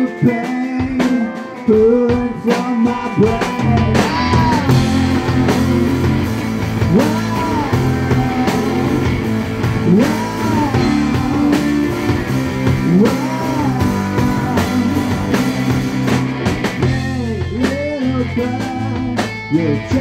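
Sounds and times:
live indie rock band: 0:00.0 - 0:20.0
wordless vocal wail: 0:02.9 - 0:15.3.

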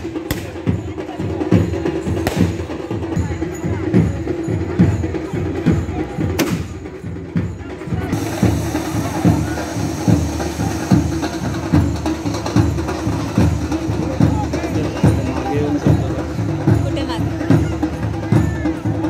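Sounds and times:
rhythmic drumming: 0:00.0 - 0:19.0.

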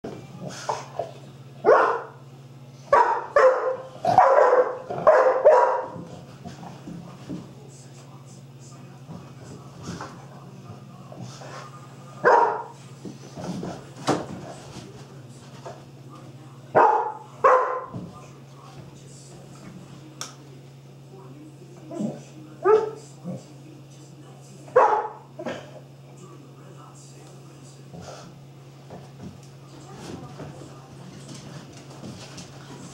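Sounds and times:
dog barking: 0:01.6 - 0:02.2, 0:02.9 - 0:06.0, 0:12.2 - 0:12.8, 0:16.8 - 0:18.0, 0:22.6 - 0:23.0, 0:24.8 - 0:25.3.

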